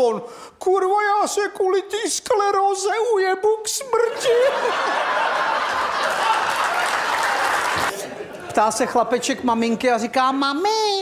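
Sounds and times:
audience laughing: 4.1 - 8.6
audience applauding: 5.4 - 8.0.

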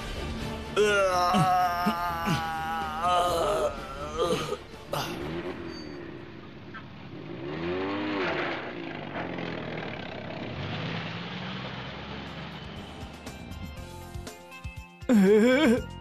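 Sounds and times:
car engine revving: 4.6 - 13.6.

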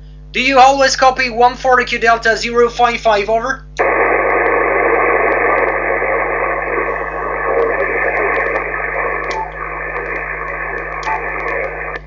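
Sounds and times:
radio static hiss: 3.7 - 12.0
faint clicks: 5.2 - 5.8, 6.7 - 12.0.

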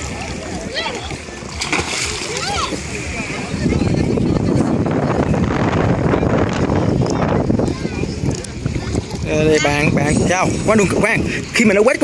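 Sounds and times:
splashing in shallow water: 0.0 - 4.5
children shouting: 2.1 - 2.9.

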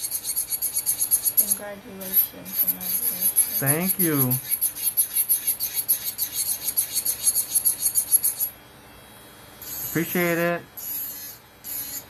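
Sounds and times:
nail drill grinding: 0.0 - 8.5, 9.6 - 10.2, 10.8 - 12.0.

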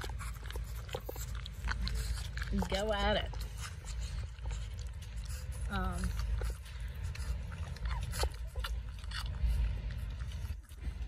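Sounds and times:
puppy smacking and chewing: 0.0 - 11.0.

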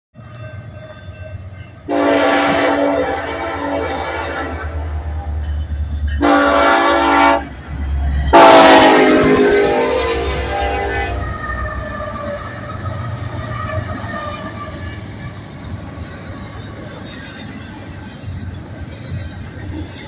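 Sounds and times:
locomotive air horn blasts: 0.9 - 5.0, 6.2 - 7.5, 8.3 - 11.3.

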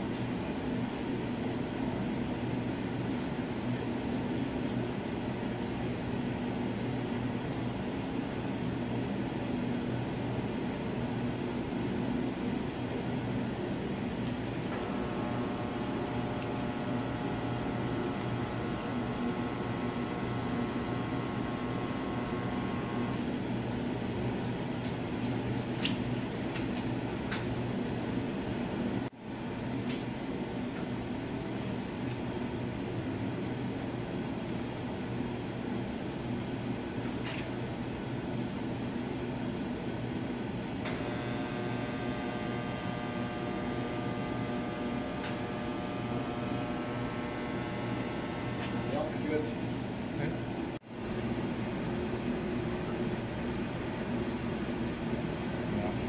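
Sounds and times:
lab equipment hum and air noise: 0.0 - 56.0.

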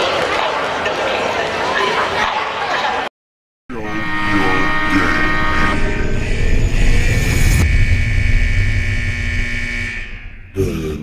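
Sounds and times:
deep rumbling drone: 3.7 - 11.0
low hum: 3.7 - 11.0
high tones bending down: 3.8 - 10.7.

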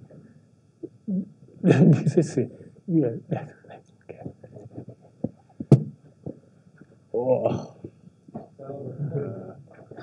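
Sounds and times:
soft knocks: 4.6 - 6.4.

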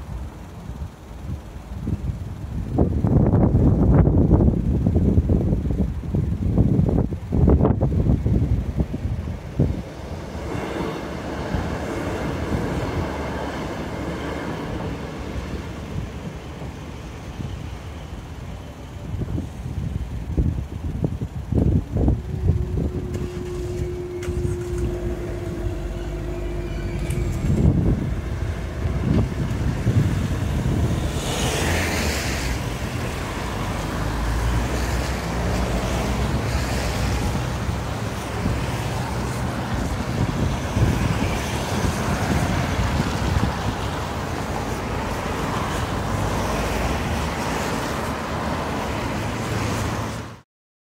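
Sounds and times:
cars driving on wet road: 0.0 - 50.4
wind buffeting microphone: 0.8 - 50.0
steady hum: 20.5 - 31.1.

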